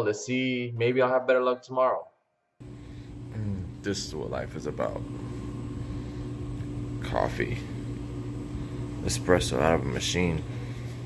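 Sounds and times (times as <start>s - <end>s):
coffee vending machine humming: 2.6s - 11.0s.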